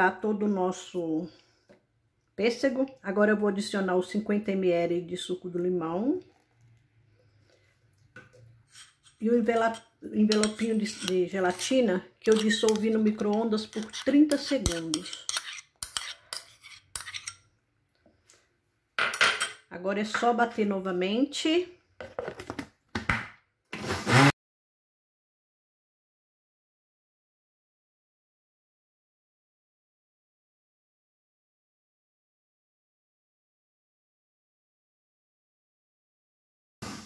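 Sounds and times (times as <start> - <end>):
blender motor running: 23.8 - 24.3.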